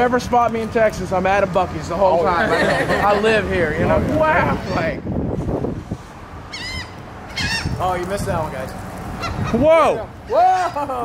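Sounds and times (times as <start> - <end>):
gulls calling: 6.4 - 11.0.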